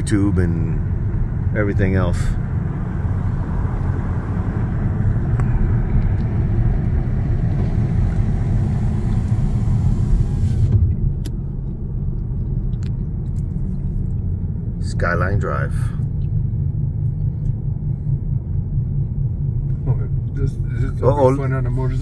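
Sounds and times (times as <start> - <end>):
car cabin rumble: 0.0 - 22.0.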